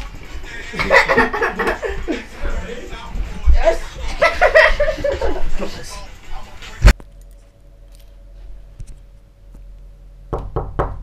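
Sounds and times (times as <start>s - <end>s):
knocking on wooden door: 10.3s - 11.0s.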